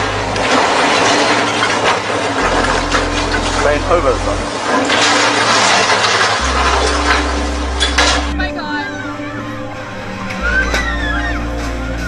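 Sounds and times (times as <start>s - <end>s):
crane crashing onto boat: 0.0s - 8.6s
water splashing: 0.0s - 8.6s.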